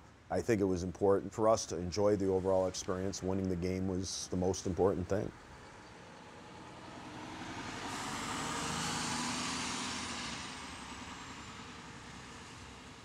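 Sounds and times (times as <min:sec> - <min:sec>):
coach driving past: 0:00.4 - 0:13.0.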